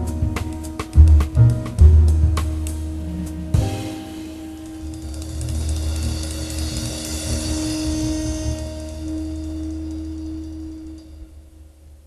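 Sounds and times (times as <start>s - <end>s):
sustained jazz chord: 0.0s - 12.0s.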